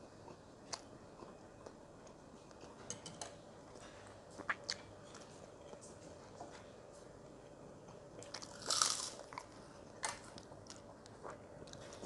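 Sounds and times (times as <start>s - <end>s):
person chewing jerky: 8.2s - 12.0s.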